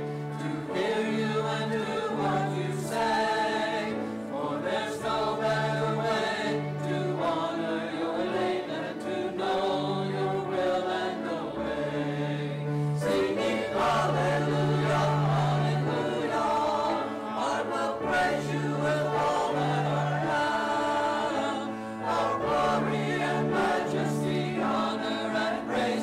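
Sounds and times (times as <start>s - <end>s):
mixed choir singing: 0.0s - 26.0s.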